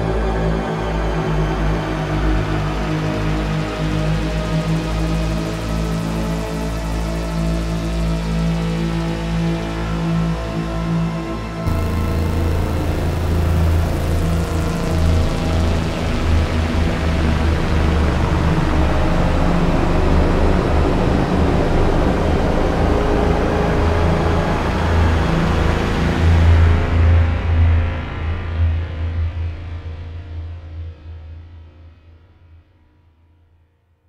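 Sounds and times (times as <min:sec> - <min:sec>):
synthesizer ambient pad: 0:03.3 - 0:26.2.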